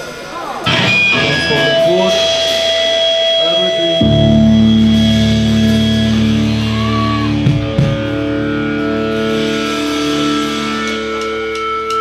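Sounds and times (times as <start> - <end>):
crowd chatter: 0.0 - 5.1
low sustained bass note: 0.7 - 7.2
electric guitar held chord: 0.7 - 11.7.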